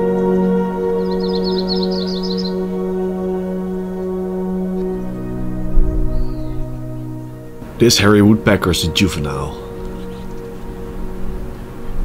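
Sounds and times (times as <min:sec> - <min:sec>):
ambient music: 0:00.0 - 0:12.0
bird trilling: 0:00.9 - 0:05.0, 0:06.0 - 0:08.1, 0:08.8 - 0:11.9.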